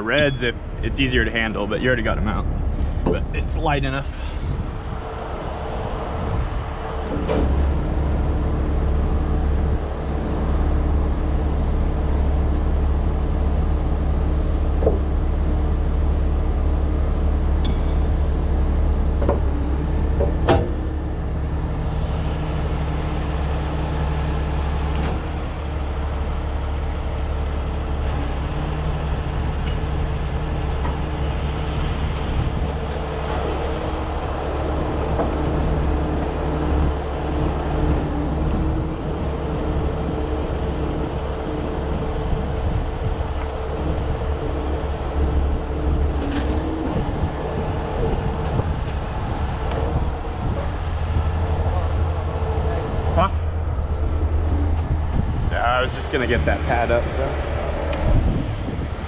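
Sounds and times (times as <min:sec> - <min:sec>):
diesel engine running: 0:00.0 - 0:59.0
hydraulic pump whine: 0:00.0 - 0:59.0.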